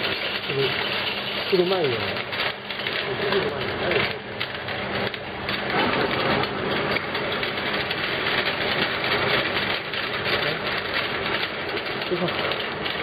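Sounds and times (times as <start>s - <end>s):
faint machine hum: 0.0s - 13.0s
glass bottles clinking and rattling: 0.0s - 13.0s.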